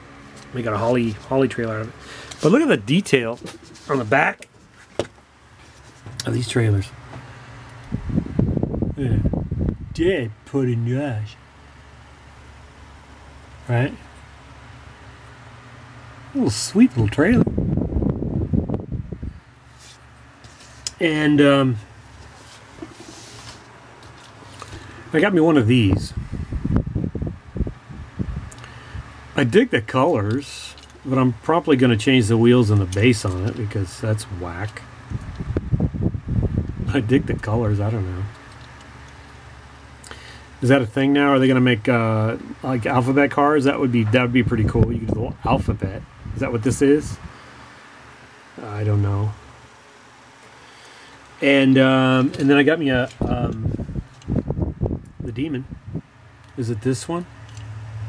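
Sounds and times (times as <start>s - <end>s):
faint steady hum: 0.0s - 58.0s
speech: 0.5s - 4.5s, 6.2s - 7.0s, 9.0s - 9.3s, 9.9s - 11.4s, 13.6s - 14.1s, 16.3s - 17.5s, 20.9s - 21.8s, 25.1s - 26.2s, 29.4s - 34.9s, 36.9s - 38.4s, 40.6s - 47.2s, 48.6s - 49.4s, 51.4s - 53.8s, 55.2s - 55.7s, 56.6s - 57.3s
crackling microphone handling noise: 7.1s - 10.1s, 34.6s - 38.8s, 52.2s - 56.6s.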